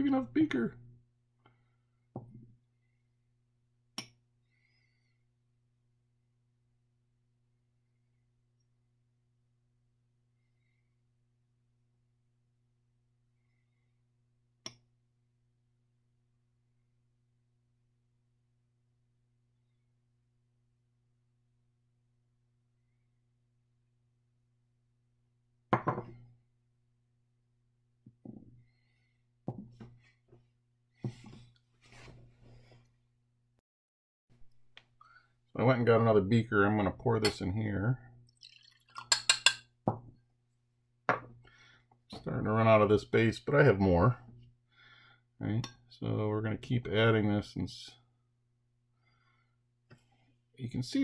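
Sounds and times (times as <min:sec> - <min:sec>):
plastic beaker set down on table: 0:25.8 - 0:26.2.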